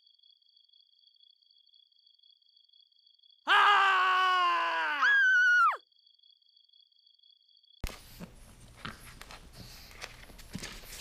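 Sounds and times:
cat yowling and shrieking: 0:03.5 - 0:05.8.

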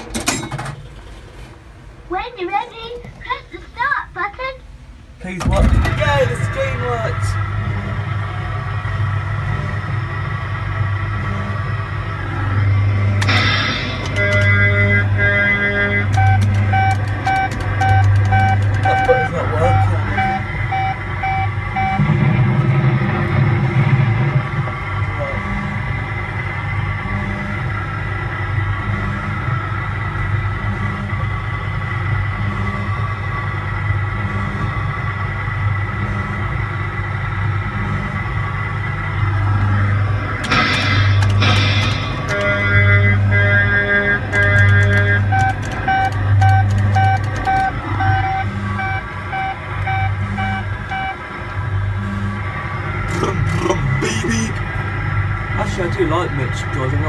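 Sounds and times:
electronic music with pulsing low note: 0:05.6 - 0:55.7
short evenly spaced beeps: 0:14.1 - 0:22.1, 0:44.4 - 0:51.2.

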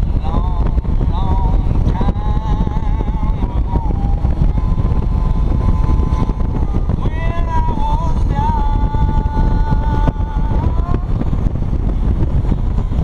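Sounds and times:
motorcycle engine running: 0:00.0 - 0:13.0
wind rushing over microphone: 0:00.0 - 0:13.0
wavering high tone: 0:02.6 - 0:08.2.

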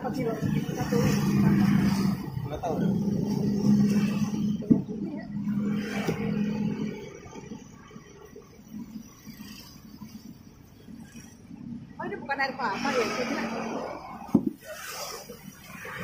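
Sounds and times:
vehicle engine hum: 0:00.0 - 0:16.0.

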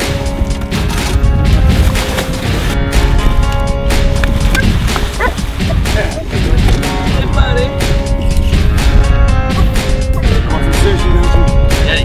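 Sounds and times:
background music: 0:00.0 - 0:12.0
dog yipping and whining: 0:04.6 - 0:05.4.

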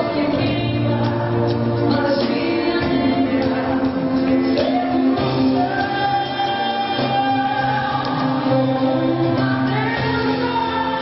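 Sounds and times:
live pop band playing: 0:00.0 - 0:11.0
woman singing: 0:00.0 - 0:11.0.

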